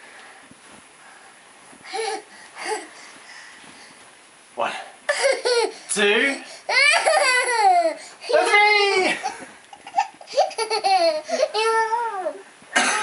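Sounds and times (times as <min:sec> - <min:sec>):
toddler laughing and squealing: 0:06.7 - 0:09.2, 0:09.8 - 0:12.4.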